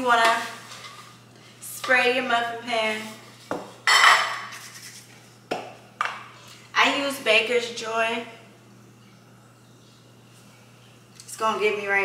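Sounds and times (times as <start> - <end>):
metal pan clattering on countertop: 3.9 - 4.5.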